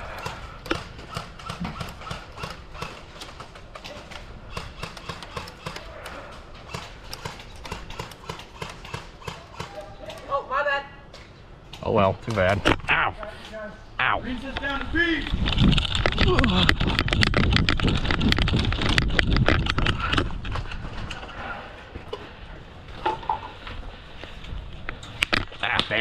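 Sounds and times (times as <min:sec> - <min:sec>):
airsoft gunfire clicks: 0:06.7 - 0:10.3.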